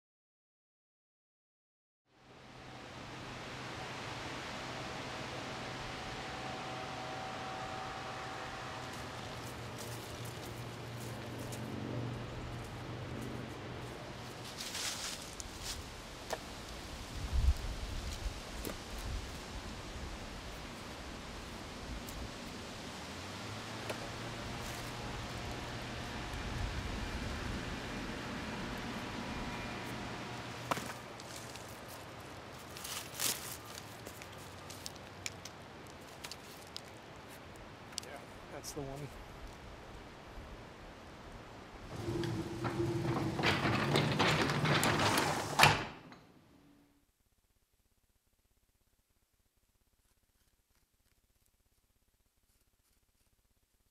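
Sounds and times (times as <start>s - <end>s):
steady outdoor hiss: 2.1s - 53.9s
rustling: 12.6s - 16.7s, 29.5s - 37.6s, 49.6s - 53.9s
shuffling noise: 13.9s - 15.9s.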